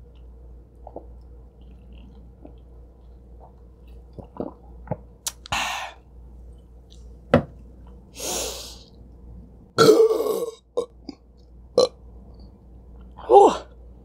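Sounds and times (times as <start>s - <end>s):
woman burping loudly: 9.8s - 10.6s.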